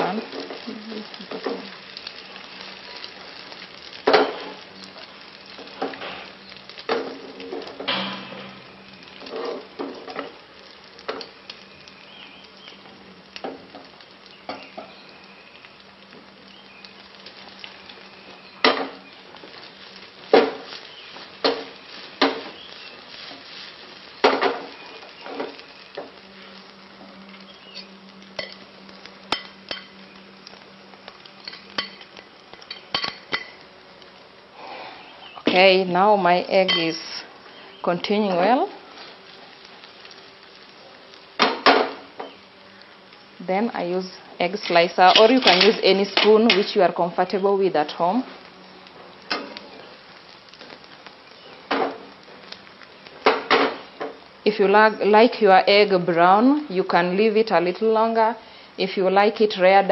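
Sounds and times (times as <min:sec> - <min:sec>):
egg sizzling in a pan: 0:00.0 - 0:59.9
utensil clinking on pan and bowl: 0:28.4 - 0:28.6, 0:31.4 - 0:33.6, 0:36.6 - 0:36.9, 0:45.0 - 0:46.7.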